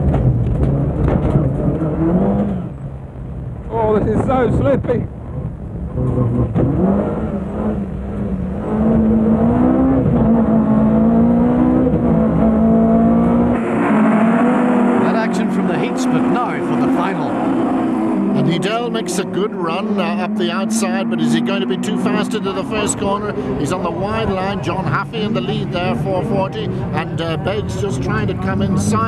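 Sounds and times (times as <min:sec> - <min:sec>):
car engine revving: 0:00.0 - 0:29.0.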